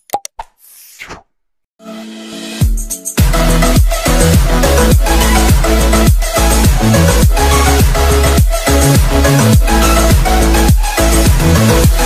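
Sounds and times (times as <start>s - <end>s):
music with steady beat: 2.6s - 12.0s.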